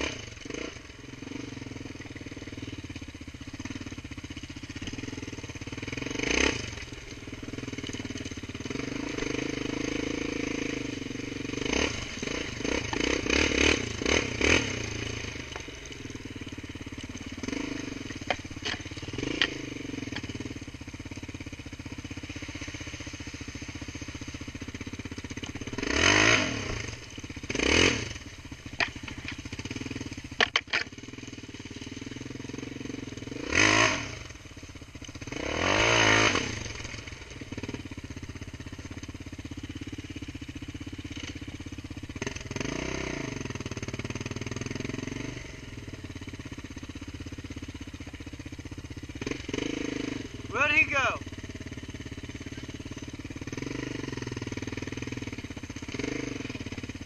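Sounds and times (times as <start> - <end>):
quad bike engine revving: 0.0 - 57.0
person shouting: 50.5 - 51.2.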